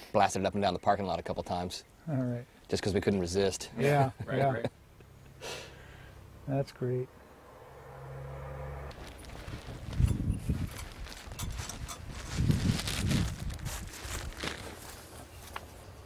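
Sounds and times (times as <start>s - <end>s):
footsteps on dry leaves: 8.9s - 15.9s.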